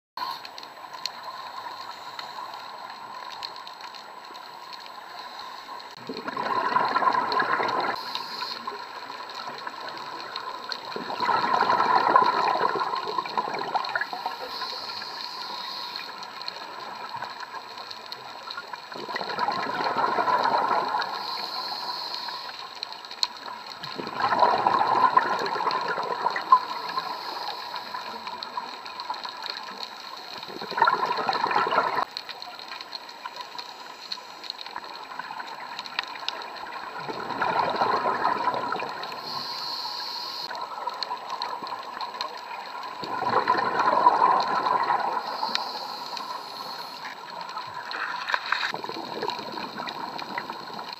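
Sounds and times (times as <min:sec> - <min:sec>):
regulator exhale bubbling: 0:05.9 - 0:08.9, 0:10.9 - 0:16.1, 0:19.0 - 0:22.4, 0:24.0 - 0:28.2, 0:30.4 - 0:32.1, 0:37.0 - 0:40.6, 0:43.0 - 0:47.2
high hiss of inhalation: 0:07.9 - 0:08.8, 0:14.1 - 0:16.2, 0:21.0 - 0:22.7, 0:26.6 - 0:28.2, 0:39.0 - 0:40.5, 0:45.2 - 0:47.2.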